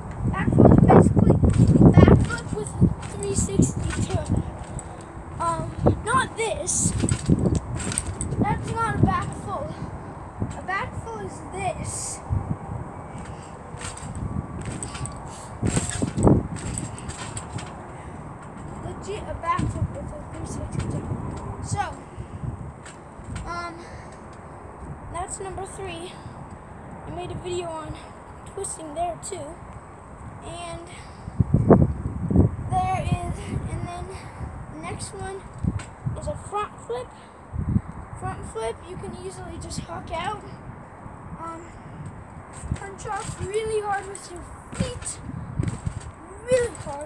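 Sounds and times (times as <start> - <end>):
trampoline bouncing thumps: 0.0 - 24.3, 41.9 - 47.0
child talking: 0.3 - 4.5, 5.4 - 7.3, 7.9 - 9.9, 10.5 - 12.2, 14.8 - 16.2, 18.8 - 22.2, 23.4 - 24.0, 25.1 - 26.2, 27.0 - 29.6, 30.4 - 31.1, 32.7 - 35.5, 36.2 - 37.3, 38.2 - 40.6, 41.4 - 41.8, 42.6 - 45.3, 46.2 - 47.0.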